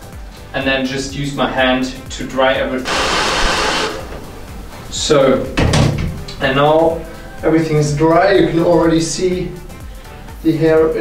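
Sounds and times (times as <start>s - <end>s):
hair dryer blowing air: 2.9s - 4.6s.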